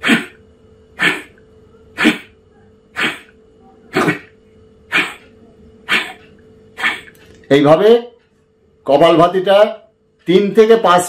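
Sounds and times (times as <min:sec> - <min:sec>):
sharp nasal exhalations: 0:00.0 - 0:00.4, 0:01.0 - 0:01.4, 0:02.0 - 0:05.3, 0:05.9 - 0:06.2, 0:06.8 - 0:07.2.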